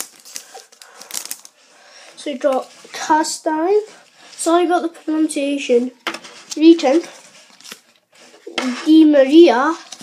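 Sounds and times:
foil wrapper crinkling: 0.0 - 1.6.

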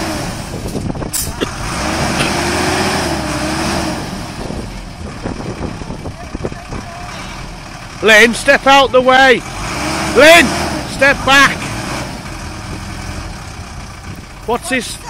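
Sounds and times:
minibus engine revving: 0.0 - 15.0.

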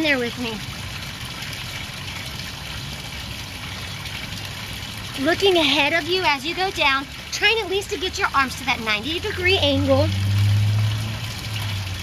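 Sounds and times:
fountain water trickling and splashing: 0.0 - 12.0.

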